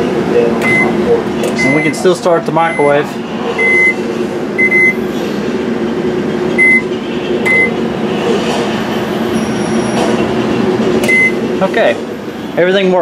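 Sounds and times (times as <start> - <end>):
microwave oven humming: 0.0 - 12.9
keypad beeping: 0.6 - 1.0, 4.6 - 5.0, 6.6 - 7.8, 11.0 - 11.4.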